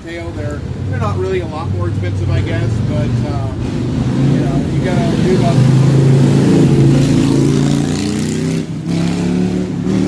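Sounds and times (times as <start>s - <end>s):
car engine accelerating past: 3.6s - 10.0s.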